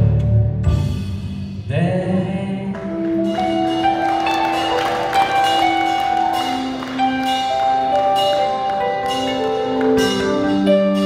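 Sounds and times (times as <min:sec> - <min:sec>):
live band playing instrumental: 0:02.9 - 0:11.0.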